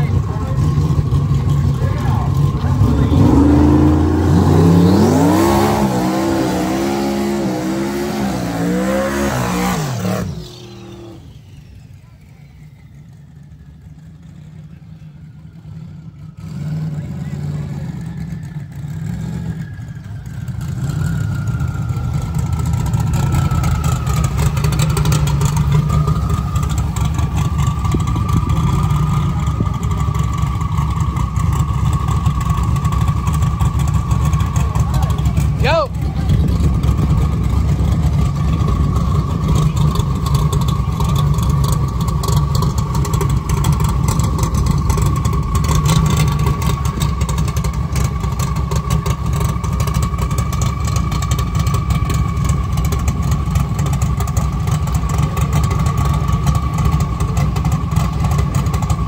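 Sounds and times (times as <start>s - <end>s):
loud engine running steadily: 0.0s - 59.0s
racing car accelerating through gears: 2.7s - 11.3s.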